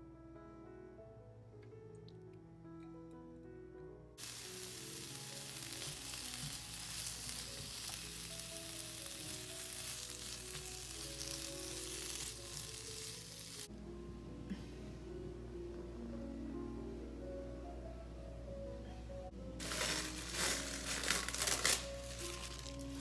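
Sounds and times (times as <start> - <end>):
soft background music: 0.0 - 23.0
peppers sizzling in hot oil: 4.2 - 13.7, 19.6 - 23.0.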